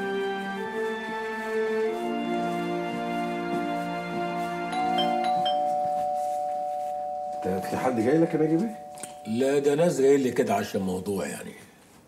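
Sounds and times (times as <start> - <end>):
doorbell ding-dong chime: 4.8 - 10.1.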